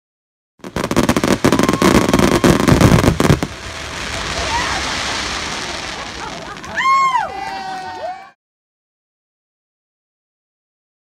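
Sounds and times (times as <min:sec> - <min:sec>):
fireworks crackling: 0:00.6 - 0:08.2.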